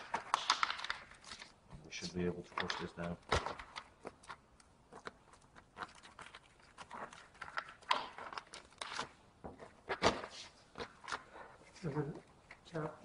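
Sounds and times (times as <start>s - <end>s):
rubber and paper rustling: 0.0s - 13.0s.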